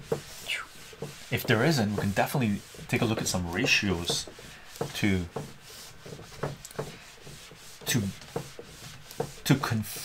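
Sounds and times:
eraser rubbing on whiteboard: 0.0s - 10.0s.

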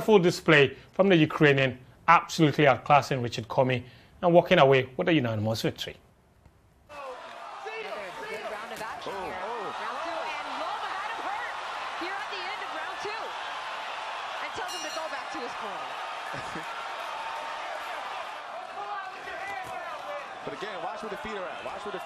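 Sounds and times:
crowd shouting: 6.9s - 22.0s.

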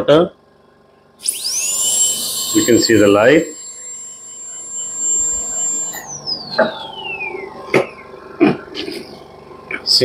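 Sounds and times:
dental drill whining: 1.2s - 8.8s.

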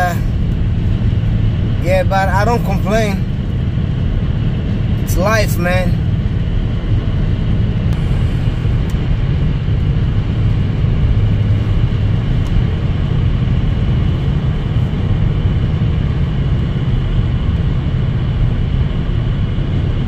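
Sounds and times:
car road noise drone: 0.0s - 20.0s.

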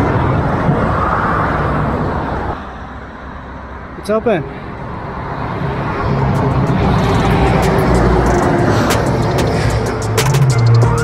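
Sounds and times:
car passing on highway: 0.0s - 10.7s
background music: 6.3s - 11.0s.

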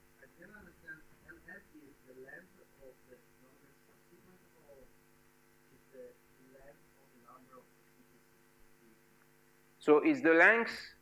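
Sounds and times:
faint electrical hum: 0.0s - 11.0s
man speaking: 0.2s - 4.9s, 5.8s - 7.7s, 9.8s - 11.0s.

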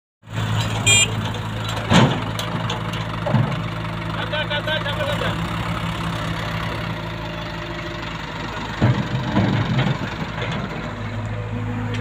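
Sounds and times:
tractor diesel engine running: 0.2s - 12.0s.

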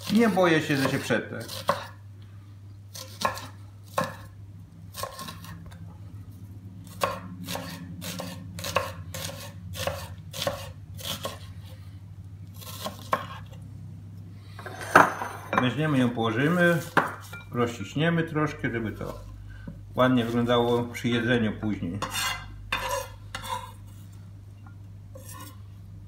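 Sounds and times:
knife slicing onion: 0.0s - 2.0s, 2.9s - 5.7s, 6.8s - 11.8s, 12.5s - 13.6s, 22.0s - 24.0s, 25.1s - 25.6s.

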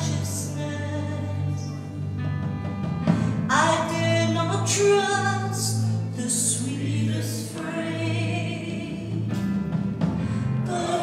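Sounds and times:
band playing: 0.0s - 11.0s
singers singing a hymn: 10.3s - 11.0s.

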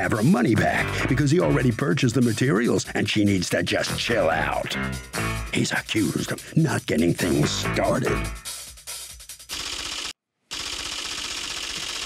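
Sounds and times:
rapid mechanical rattle: 9.5s - 12.0s.

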